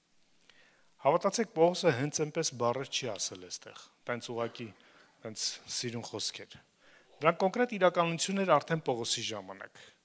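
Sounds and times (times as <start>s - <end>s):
man preaching into microphone: 1.0s - 6.6s, 7.2s - 10.0s.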